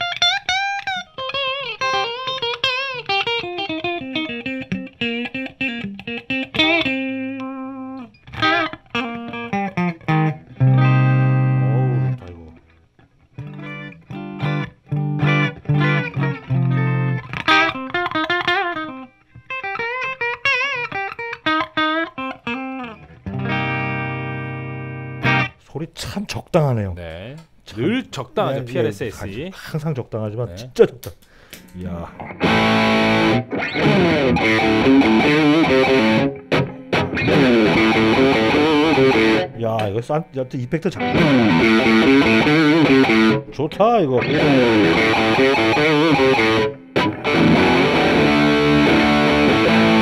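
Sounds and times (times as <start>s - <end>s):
clean electric guitar melody: 0.0s - 25.6s, 32.2s - 39.6s, 41.0s - 43.6s, 44.2s - 50.0s
loud sustained guitar chords: 10.1s - 12.2s, 13.4s - 17.8s, 23.2s - 25.5s, 32.2s - 39.5s, 41.0s - 43.4s, 44.2s - 50.0s.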